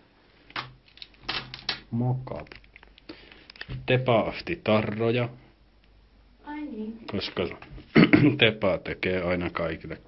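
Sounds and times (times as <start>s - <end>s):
plastic packaging clicks and rustles: 0.5s - 3.8s.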